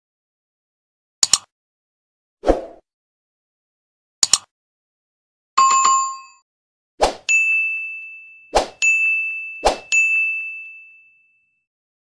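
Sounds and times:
sharp clicks: 1.2s - 1.5s, 4.2s - 4.5s
bell chime: 5.6s - 6.4s, 7.3s - 11.7s
bright bell ding: 7.3s - 11.6s.

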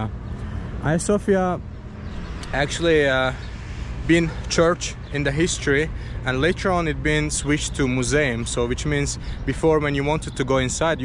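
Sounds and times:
low outdoor rumble: 0.0s - 11.0s
man speaking: 0.8s - 1.6s, 2.4s - 3.5s, 4.1s - 11.0s.

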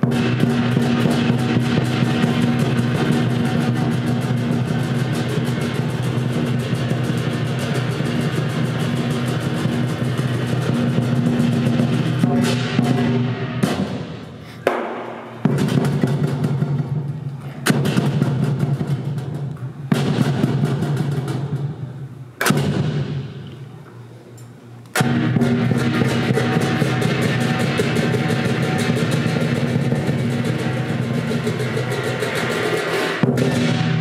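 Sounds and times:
drum and cymbals rolling: 0.0s - 23.8s, 24.9s - 34.0s
loud ringing crashes: 25.0s - 34.0s.

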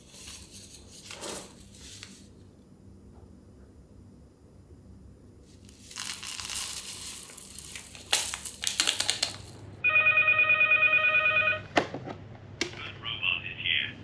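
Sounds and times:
paper sachets crinkling and tearing: 5.5s - 9.6s
electronic telephone ring: 9.8s - 11.7s.

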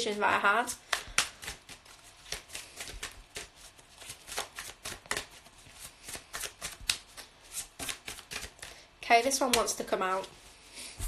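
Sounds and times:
cards being shuffled: 0.7s - 8.8s.

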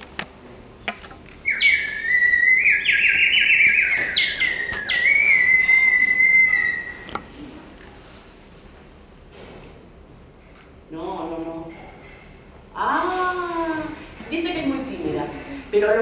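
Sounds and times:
warbling bird call whistle: 1.4s - 7.2s.

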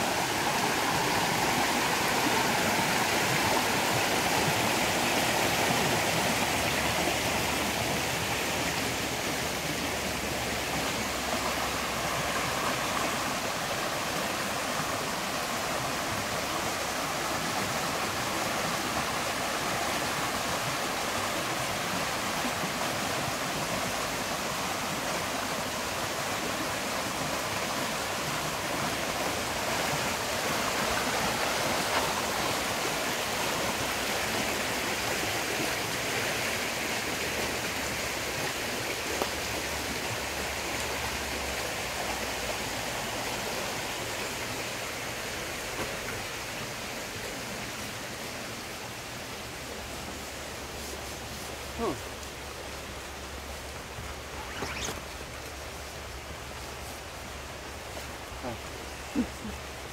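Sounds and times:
creek running over rocks: 0.0s - 59.9s.

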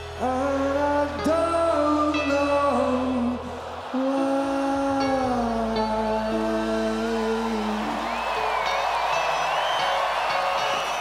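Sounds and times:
live rock band playing: 0.0s - 11.0s
crowd noise: 2.7s - 11.0s
high whistle or whoop: 7.6s - 11.0s.

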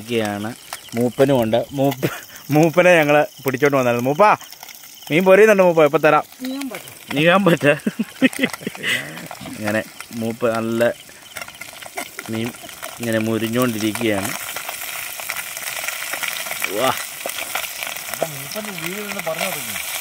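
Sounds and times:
curry sizzling in a pot: 0.0s - 20.0s
wood fire crackling: 0.0s - 20.0s
person speaking: 5.1s - 11.0s, 18.2s - 19.8s.

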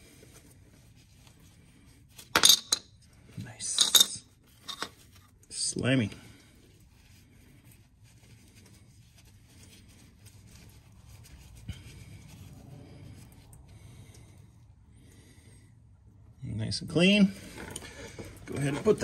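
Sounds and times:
cloth rubbing on metal: 4.3s - 13.5s, 17.0s - 19.0s.

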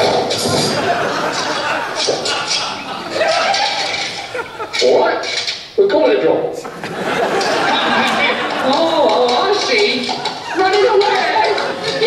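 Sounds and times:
voices talking over one another: 7.5s - 12.0s.

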